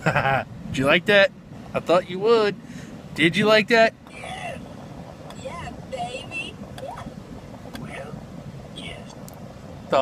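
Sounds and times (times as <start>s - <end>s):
low rumble inside car: 0.0s - 10.0s.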